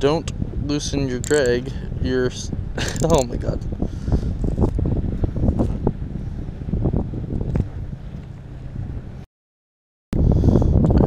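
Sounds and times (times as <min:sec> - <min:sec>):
wind buffeting microphone: 0:00.0 - 0:09.2, 0:10.2 - 0:11.0
fishing rod handling thumps: 0:01.2 - 0:01.7, 0:02.8 - 0:03.4.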